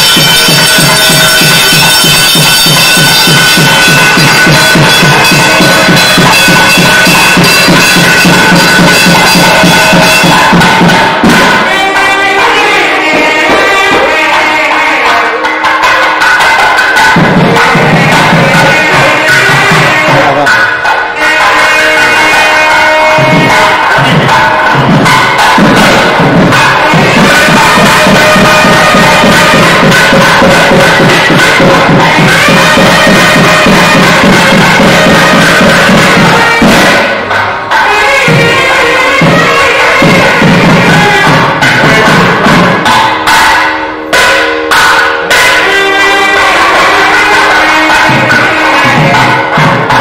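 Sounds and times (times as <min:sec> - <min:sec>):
temple bells ringing: 0:00.0 - 0:50.0.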